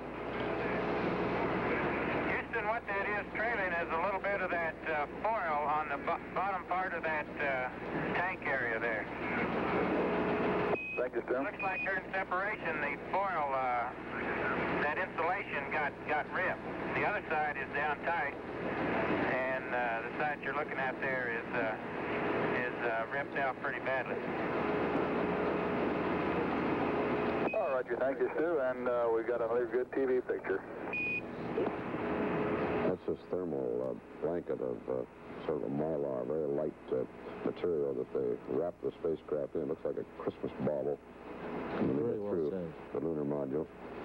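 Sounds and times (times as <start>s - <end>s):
radio channel hiss: 0.4s - 10.2s, 11.0s - 24.3s, 27.4s - 44.0s
short steady radio beep: 10.8s - 12.0s, 27.4s - 27.8s, 30.9s - 31.3s.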